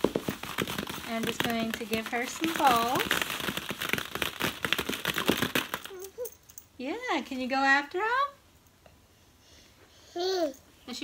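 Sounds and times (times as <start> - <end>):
plastic balls bouncing on mat: 0.0 - 6.4.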